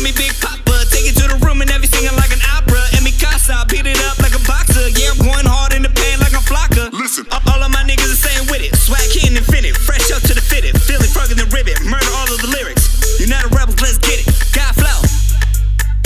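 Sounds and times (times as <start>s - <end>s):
rapping over a heavy bass beat: 0.0s - 16.0s.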